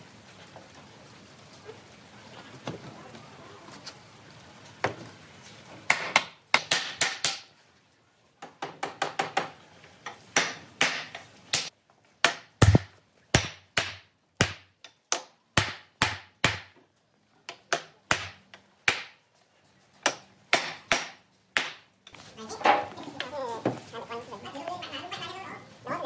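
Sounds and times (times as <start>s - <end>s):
wooden mallet knocking wood: 12.2s - 14.6s.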